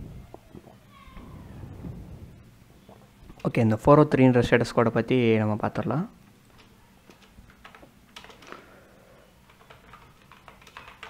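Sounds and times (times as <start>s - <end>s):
computer keyboard typing: 6.6s - 11.0s.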